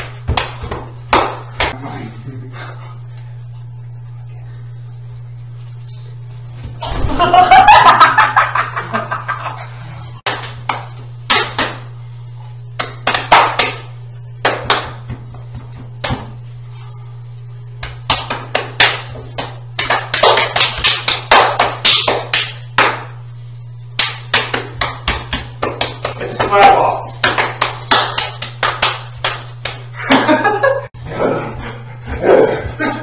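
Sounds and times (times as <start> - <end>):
rapid hand slaps: 0.0 - 1.8, 10.2 - 11.9, 12.8 - 15.3, 16.0 - 16.4, 17.8 - 23.2, 23.9 - 29.9.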